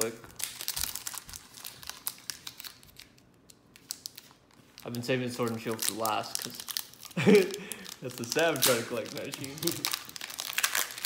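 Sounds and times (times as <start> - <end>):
foil wrapper crinkling: 0.0 - 11.0.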